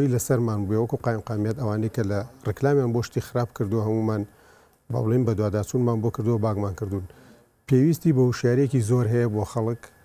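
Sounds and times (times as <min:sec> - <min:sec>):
man talking: 0:00.0 - 0:04.3, 0:04.9 - 0:10.0.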